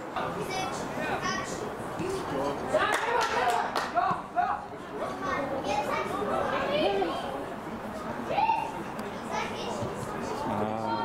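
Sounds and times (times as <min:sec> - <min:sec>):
young voices shouting: 0:08.2 - 0:08.8.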